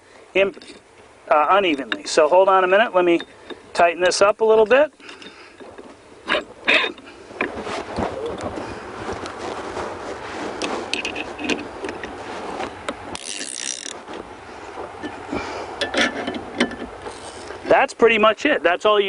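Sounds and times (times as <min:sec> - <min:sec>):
steady background hiss: 0:00.0 - 0:19.0
metal clicks and scraping: 0:00.4 - 0:00.9, 0:03.1 - 0:08.5, 0:10.6 - 0:15.2, 0:15.8 - 0:17.6.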